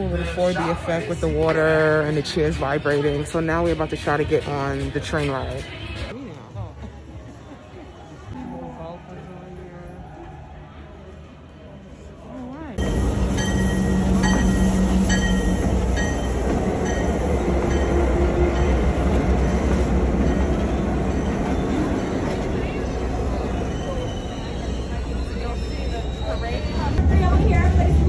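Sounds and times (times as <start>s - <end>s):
diesel locomotive rumbling past: 12.8s - 28.0s.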